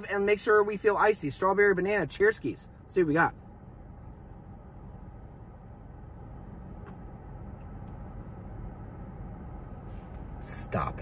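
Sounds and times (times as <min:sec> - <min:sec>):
car cabin low rumble: 0:00.0 - 0:11.0.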